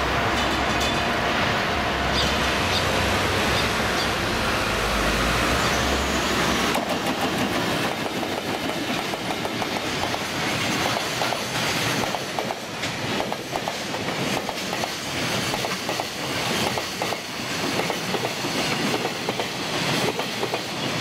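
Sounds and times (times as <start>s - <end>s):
train rumble: 0.0s - 21.0s
train wheels clattering over rail joints: 6.6s - 20.8s.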